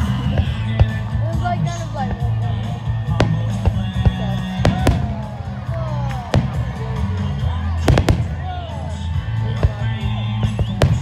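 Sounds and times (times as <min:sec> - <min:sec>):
crowd voices: 0:00.0 - 0:11.0
music: 0:00.0 - 0:11.0
fireworks bangs: 0:03.1 - 0:05.6, 0:07.8 - 0:08.8, 0:09.6 - 0:11.0.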